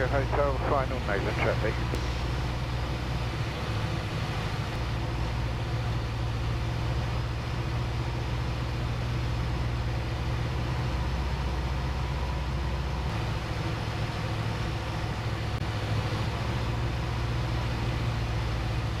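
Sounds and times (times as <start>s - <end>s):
light aircraft engine running: 0.0s - 19.0s.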